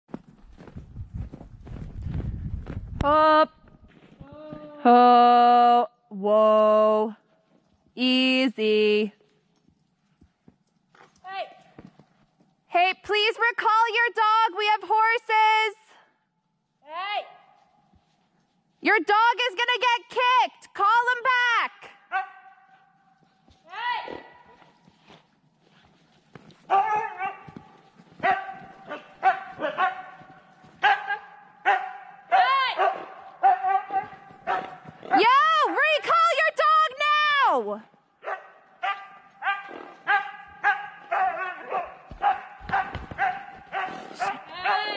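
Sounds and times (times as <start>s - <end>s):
horse hooves in snow: 0.1s - 3.0s, 9.2s - 13.9s, 16.6s - 20.4s, 21.0s - 44.5s
dogs barking and yelping: 28.2s - 35.3s, 38.2s - 44.5s.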